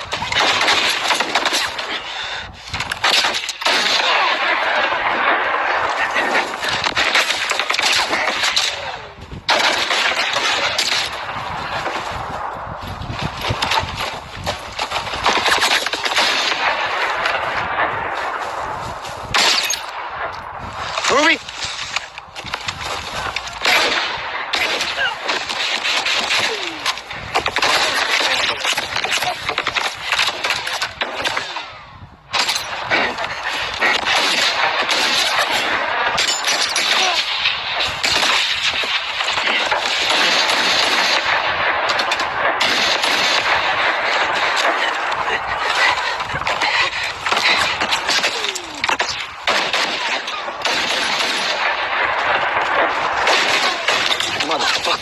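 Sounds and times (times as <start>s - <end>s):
rapid gunfire: 0.0s - 55.0s.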